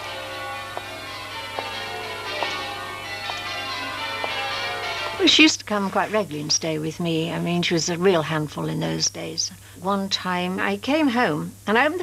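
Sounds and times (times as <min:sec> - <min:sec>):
bells ringing: 0:00.0 - 0:05.6.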